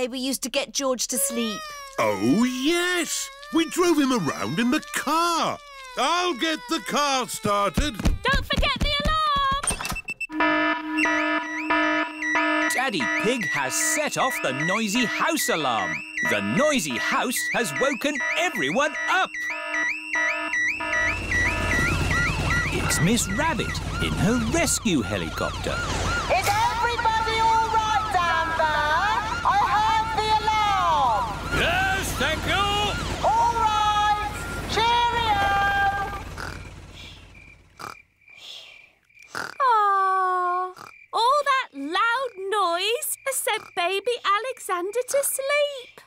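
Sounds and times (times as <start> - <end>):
cartoon voice long ooh: 1.3 - 8.3
electronic alarm warble: 9.8 - 37.9
cartoon pig snorts: 36.4 - 37.2, 39.3 - 39.6.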